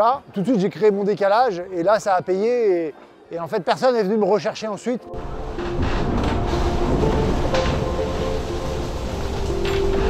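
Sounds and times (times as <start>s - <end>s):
background music: 0.4s - 10.0s
yacht low rumble: 5.1s - 10.0s
rushing water: 5.2s - 10.0s.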